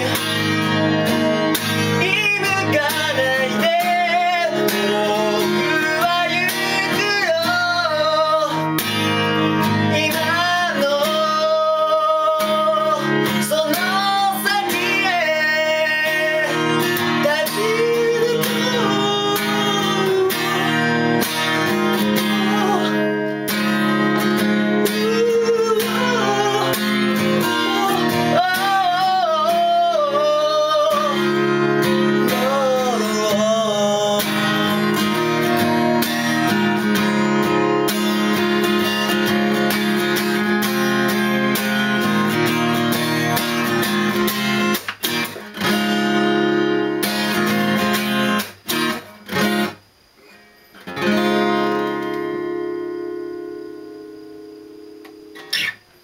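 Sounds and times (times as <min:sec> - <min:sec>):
acoustic guitar strumming: 0:00.0 - 0:56.0
person singing: 0:01.8 - 0:09.0, 0:09.6 - 0:37.2.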